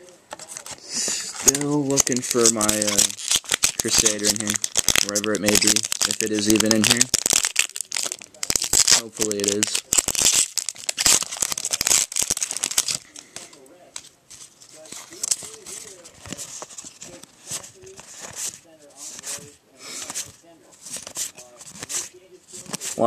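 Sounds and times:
foil wrapper crinkling and tearing: 1.4 - 13.5
cards sliding swishes: 14.3 - 23.0.

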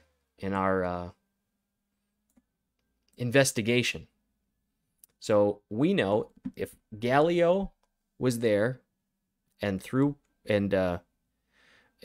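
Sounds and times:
man speaking: 0.4 - 1.2, 3.2 - 4.1, 5.1 - 8.9, 9.6 - 11.1.

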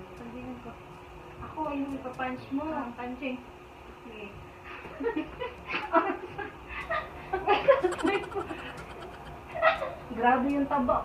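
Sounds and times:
women laughing: 5.2 - 9.9.

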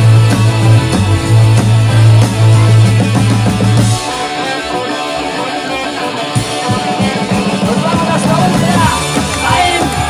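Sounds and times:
drums: 0.0 - 10.0
electric guitars: 0.0 - 10.0.

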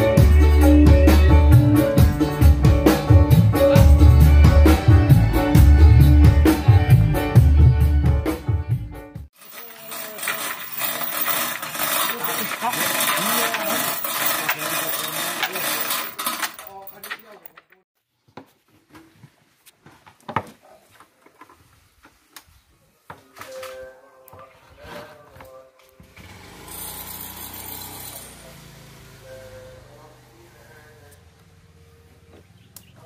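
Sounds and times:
hoist chain rattling and clicking: 9.4 - 17.8.

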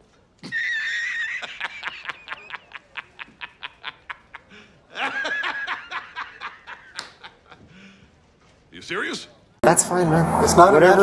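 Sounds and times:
person laughing hard: 0.4 - 7.7.

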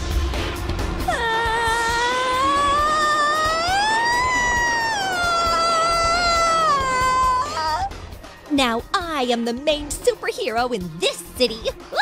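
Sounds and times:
woman screaming: 1.1 - 8.0.

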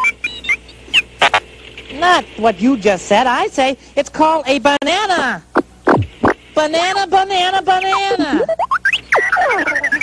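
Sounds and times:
robot beeps and chirps: 0.0 - 1.4, 5.8 - 6.4, 7.7 - 10.0
buzzy electronic burst: 5.5 - 10.0.

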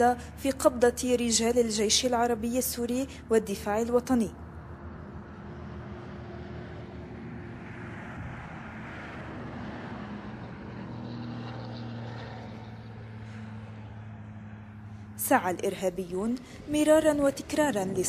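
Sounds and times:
vehicle engine running: 8.8 - 18.0.

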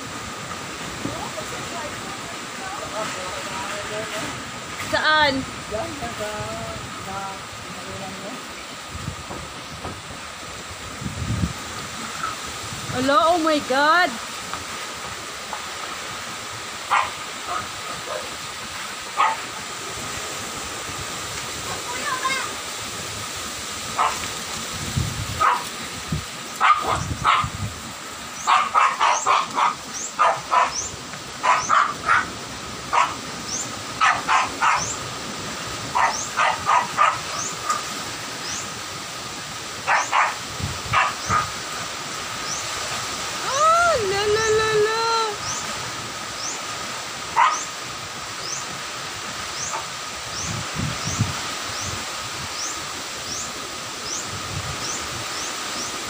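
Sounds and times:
storm wind and rain: 0.0 - 56.0
wind gusts thumping microphone: 0.0 - 56.0
dog barking: 16.9 - 18.4, 19.1 - 19.6, 23.9 - 24.3, 25.4 - 25.8, 26.6 - 27.6, 28.4 - 33.2, 34.0 - 35.0, 35.9 - 37.8, 39.8 - 41.6, 47.3 - 47.7.

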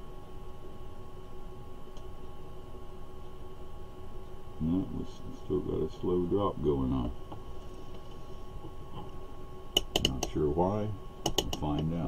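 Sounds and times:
faint steady background tone: 0.0 - 12.0.

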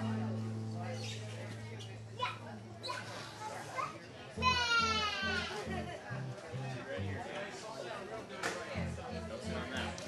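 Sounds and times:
acoustic guitar through speakers: 0.0 - 2.7, 4.4 - 7.4, 8.7 - 10.0
children's voices: 2.2 - 5.7
child's loud high call: 3.7 - 5.6.

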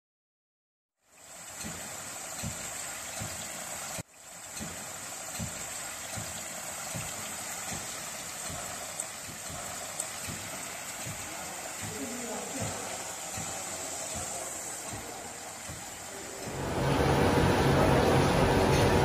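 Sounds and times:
water streams splashing into tank: 1.0 - 19.0.

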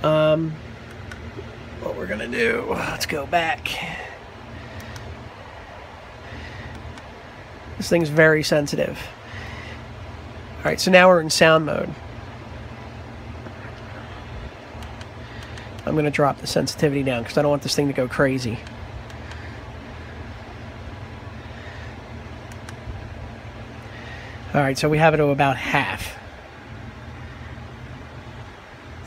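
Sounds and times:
low background hum: 0.0 - 29.0
low background rumble: 0.0 - 29.0.

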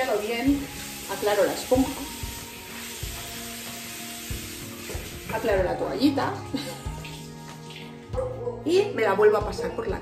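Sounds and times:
tap water running into sink: 0.0 - 8.0.

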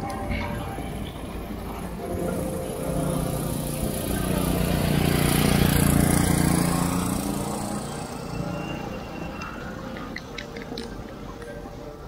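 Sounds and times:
vehicle driving past: 0.8 - 10.0.

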